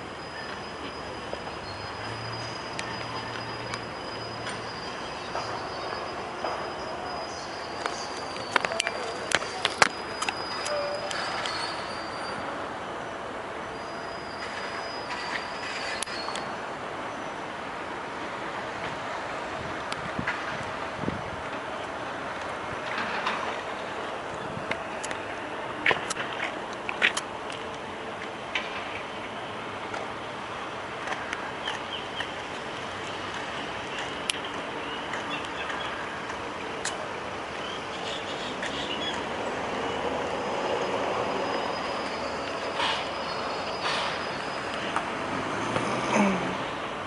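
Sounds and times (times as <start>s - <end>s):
outdoor background noise: 0.0s - 47.0s.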